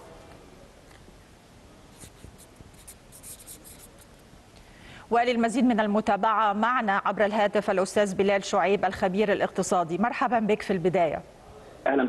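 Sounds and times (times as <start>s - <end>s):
faint rustling and scratching: 1.9s - 4.3s.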